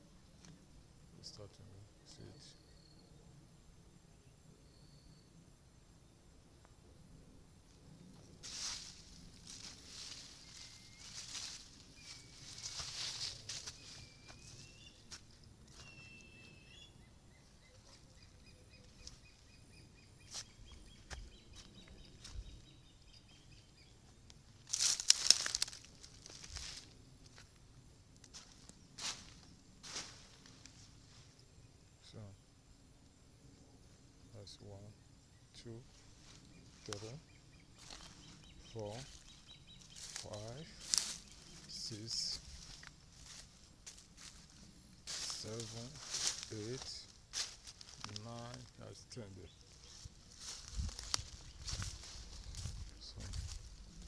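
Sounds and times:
faint chirping bird calls: 0:00.0 - 0:27.6, 0:28.3 - 0:54.0
rustling of dry grass: 0:07.6 - 0:16.7, 0:17.8 - 0:22.8, 0:24.0 - 0:31.6, 0:35.9 - 0:54.0
footsteps through vegetation: 0:08.2 - 0:16.6, 0:20.2 - 0:22.6, 0:24.1 - 0:27.6, 0:28.2 - 0:31.4, 0:35.9 - 0:37.2, 0:37.8 - 0:54.0.

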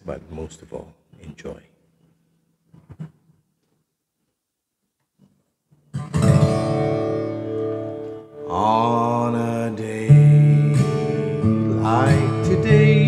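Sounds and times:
acoustic guitar strummed: 0:05.9 - 0:13.0.

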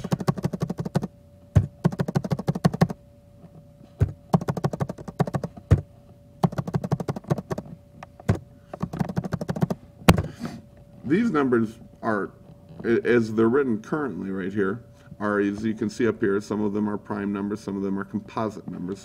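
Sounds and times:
typing on computer keyboard: 0:00.0 - 0:03.0, 0:04.0 - 0:05.8, 0:06.4 - 0:07.7, 0:08.3 - 0:09.8.

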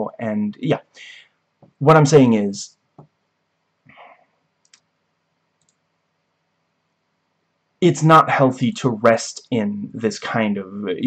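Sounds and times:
faint clicks: 0:03.9 - 0:04.9, 0:05.6 - 0:05.9.

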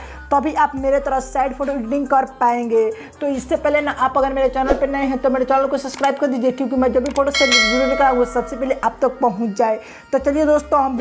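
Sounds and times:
bell-like notification ding: 0:07.4 - 0:09.1.

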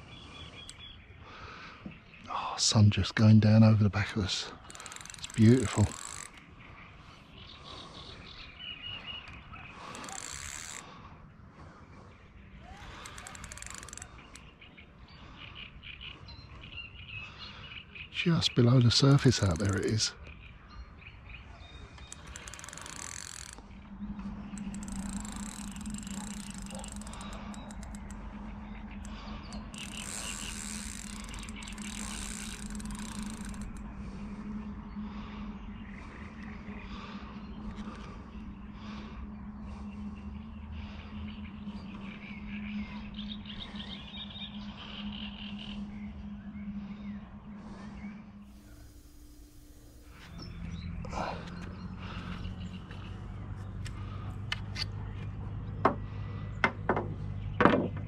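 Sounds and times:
steady low hum: 0:00.0 - 0:58.0
fishing reel winding and clicking: 0:04.6 - 0:06.4, 0:09.8 - 0:10.8, 0:12.7 - 0:14.5, 0:18.9 - 0:20.1, 0:22.0 - 0:33.8.

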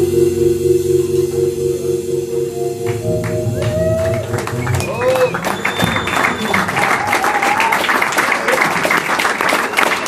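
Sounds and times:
keyboard chord ringing out: 0:00.0 - 0:05.8
audience handclaps: 0:02.9 - 0:10.0.

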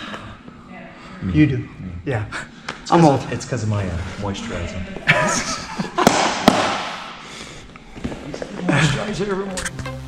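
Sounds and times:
men laughing: 0:05.0 - 0:06.8, 0:08.5 - 0:09.3.

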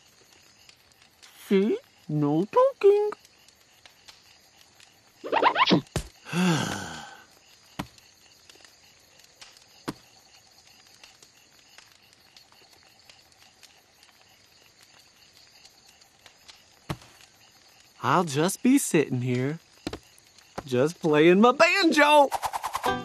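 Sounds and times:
crickets chirping: 0:00.0 - 0:23.0
person sighing: 0:06.2 - 0:07.3.

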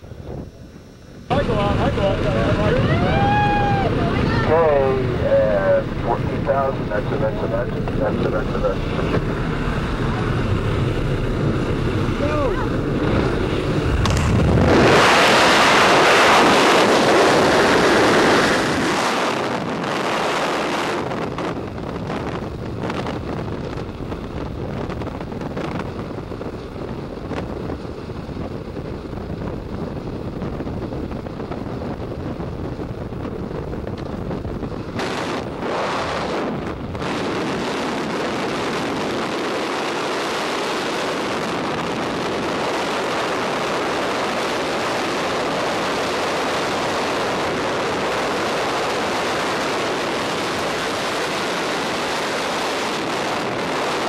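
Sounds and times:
freefall wind rushing over microphone: 0:00.0 - 0:54.0
low rumbling noise: 0:00.0 - 0:54.0.

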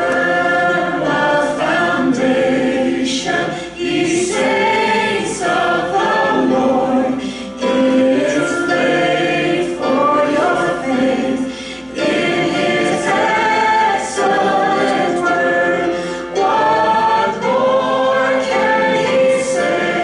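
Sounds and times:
group singing slow song: 0:00.0 - 0:20.0.

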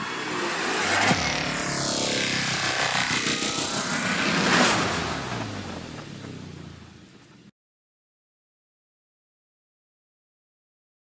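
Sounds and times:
cinematic whoosh: 0:00.0 - 0:06.6.

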